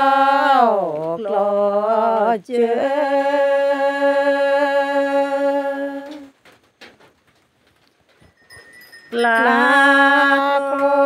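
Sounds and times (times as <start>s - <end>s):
faint clicks: 5.9s - 8.3s
person singing: 9.1s - 11.0s.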